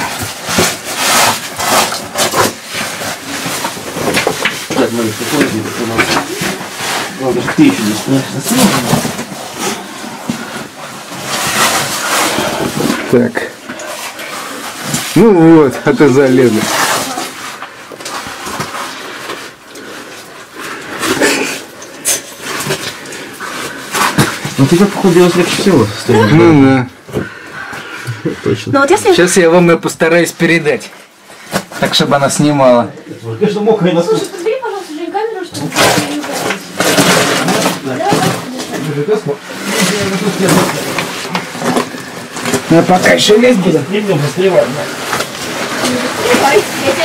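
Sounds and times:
clothing scraping against rock: 0.0 - 26.5, 34.2 - 47.0.

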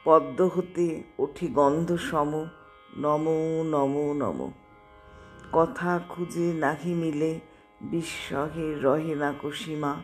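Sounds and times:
woman reciting poetry: 0.0 - 4.6, 5.4 - 10.0.

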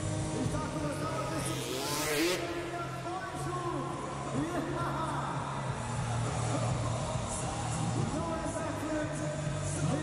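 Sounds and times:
motorbike engine revving: 0.0 - 3.7
arena music: 0.0 - 5.5.

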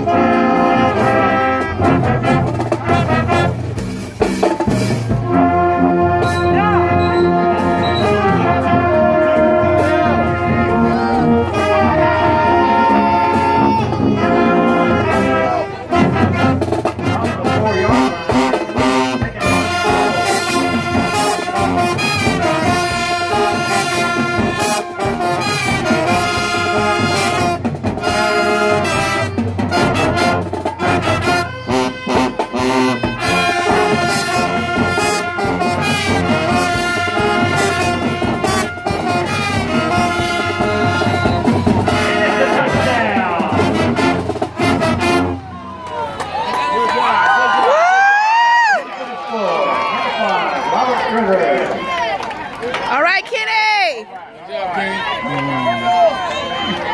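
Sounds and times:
marching band brass music: 0.0 - 48.1.

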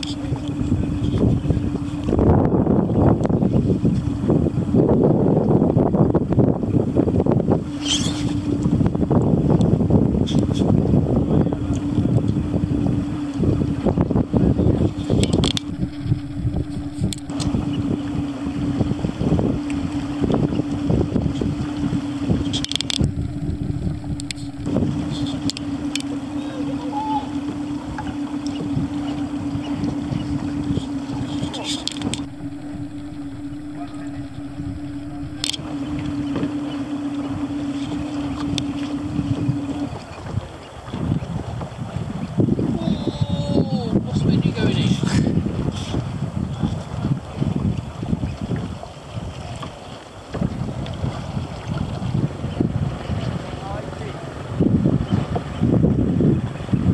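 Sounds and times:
boat motor humming: 0.0 - 4.7, 6.8 - 40.3.

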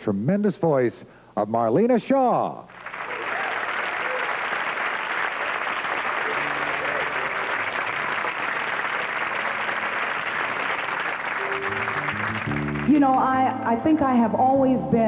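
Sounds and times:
studio audience applauding: 2.7 - 13.4
soft piano playing: 6.3 - 10.4, 11.2 - 13.7.

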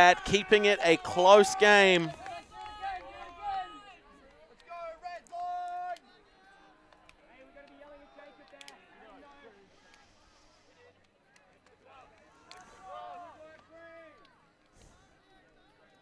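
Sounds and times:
players shouting: 0.0 - 3.8.

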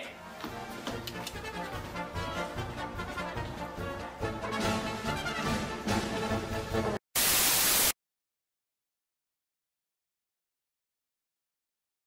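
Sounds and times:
background music: 0.0 - 7.0
burst of static hiss: 7.2 - 8.0.

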